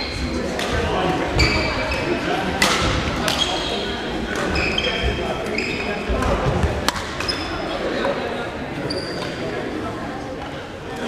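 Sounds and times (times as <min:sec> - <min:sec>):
echoing background chatter: 0:00.0 - 0:11.0
shoes squeaking on wooden floor: 0:01.4 - 0:02.2, 0:03.4 - 0:06.1
racket striking shuttlecock: 0:06.8 - 0:07.3.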